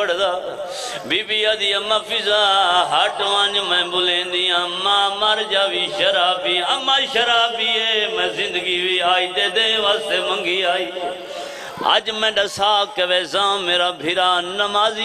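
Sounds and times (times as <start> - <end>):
man chanting a lament: 0.0 - 15.0.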